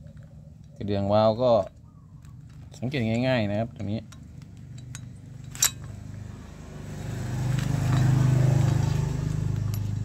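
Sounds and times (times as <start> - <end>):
vehicle engine running: 4.2 - 10.0.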